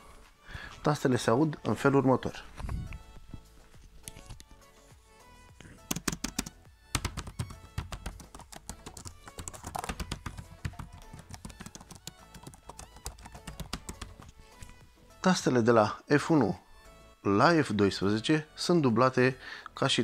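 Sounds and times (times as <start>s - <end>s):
laptop keyboard typing: 5.8s - 14.4s.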